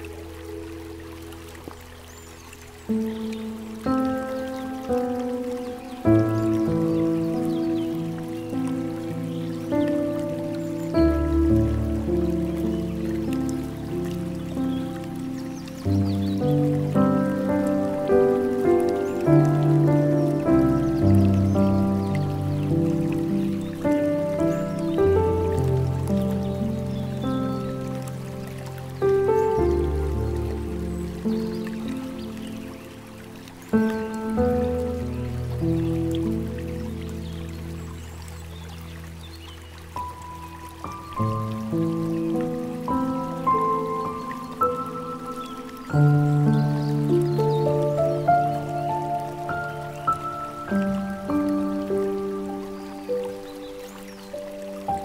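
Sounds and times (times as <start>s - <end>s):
slow gentle piano music: 0.0s - 55.0s
water trickling: 0.0s - 55.0s.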